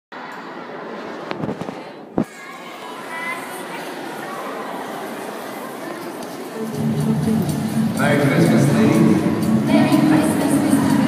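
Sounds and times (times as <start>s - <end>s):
murmur of voices: 0.1s - 11.0s.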